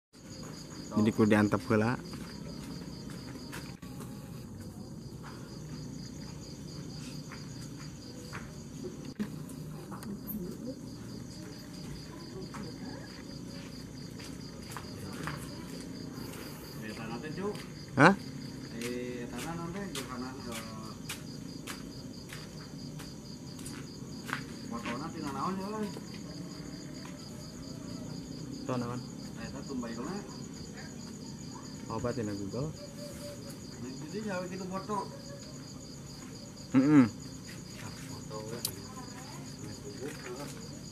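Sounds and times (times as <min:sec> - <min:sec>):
crickets chirping: 0:00.2 - 0:40.9.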